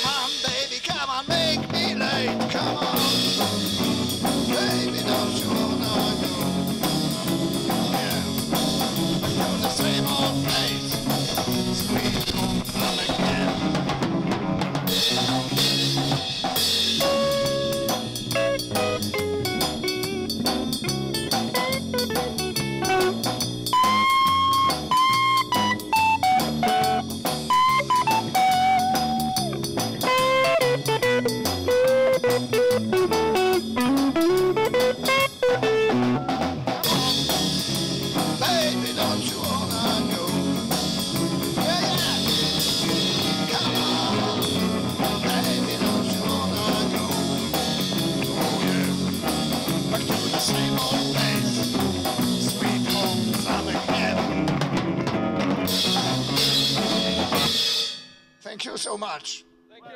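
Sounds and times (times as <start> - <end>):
live band playing: 0.0 - 58.0
guitar lead melody with bends: 3.1 - 53.5, 54.4 - 57.6.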